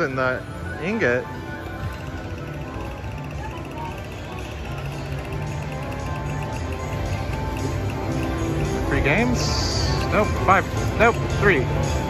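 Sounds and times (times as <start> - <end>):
slot machine electronic music: 0.0 - 12.0.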